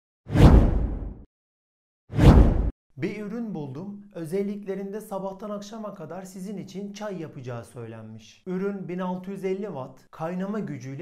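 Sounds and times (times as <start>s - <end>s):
whoosh with low rumble: 0.3s - 1.2s, 2.2s - 2.7s.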